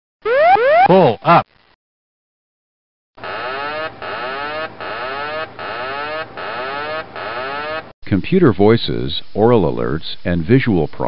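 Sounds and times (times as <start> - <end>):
cockpit warning tone: 3.2 - 7.9.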